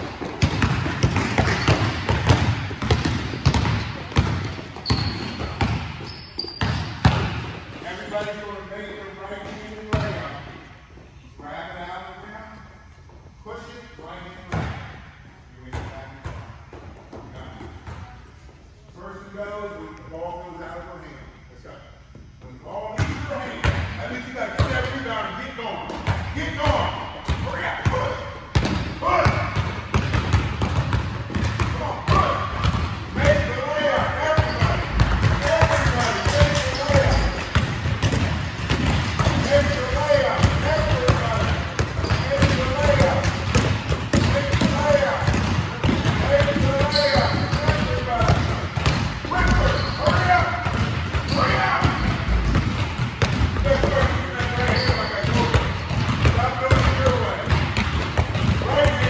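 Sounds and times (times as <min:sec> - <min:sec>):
basketballs bouncing on gym floor: 0:00.0 - 0:08.5, 0:09.4 - 0:10.5, 0:14.5 - 0:14.9, 0:23.0 - 0:25.0, 0:25.9 - 0:59.0
people talking: 0:07.8 - 0:10.4, 0:18.9 - 0:28.3, 0:33.2 - 0:37.5, 0:39.2 - 0:43.4, 0:44.2 - 0:48.6, 0:49.2 - 0:50.7, 0:51.3 - 0:52.6, 0:53.6 - 0:57.6, 0:58.6 - 0:59.0.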